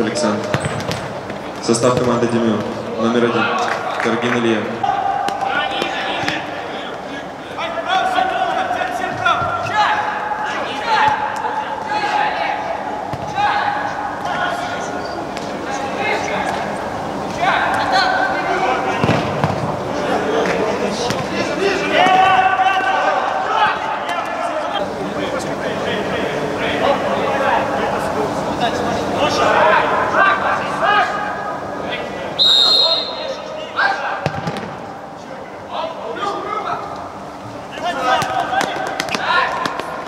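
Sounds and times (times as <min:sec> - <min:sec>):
people shouting and calling: 0:04.7 - 0:15.0, 0:21.4 - 0:24.8
ball kicked and bouncing: 0:34.2 - 0:34.8.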